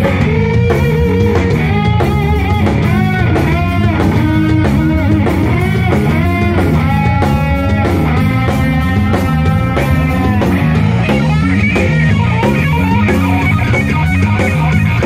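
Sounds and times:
electric guitar lead: 0:00.0 - 0:15.0
live rock band playing: 0:00.0 - 0:15.0.

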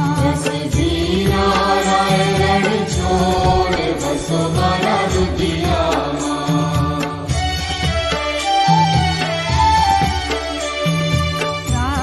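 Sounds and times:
devotional chanted singing: 0:00.0 - 0:08.3
instrumental accompaniment: 0:00.0 - 0:12.0.

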